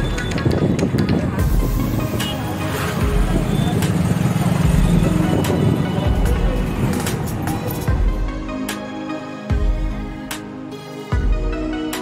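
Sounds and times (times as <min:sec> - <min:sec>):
vehicle road noise: 0:00.0 - 0:08.2
background music: 0:00.0 - 0:12.0
street traffic: 0:00.0 - 0:12.0.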